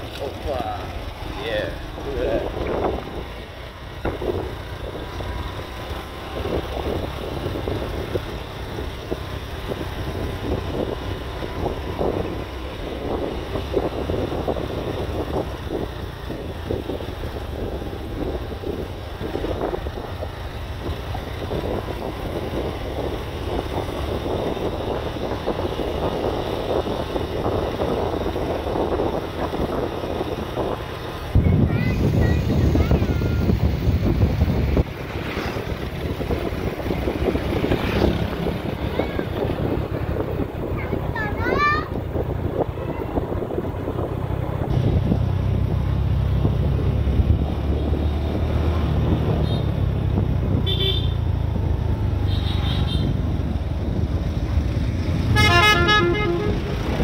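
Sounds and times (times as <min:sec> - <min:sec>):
wind buffeting microphone: 0:00.0 - 0:52.2, 0:52.9 - 0:57.0
motorbike rumble: 0:00.0 - 0:57.0.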